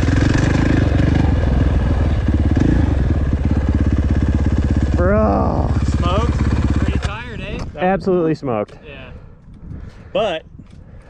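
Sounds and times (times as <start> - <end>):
motocross bike engine running: 0.0 - 7.3.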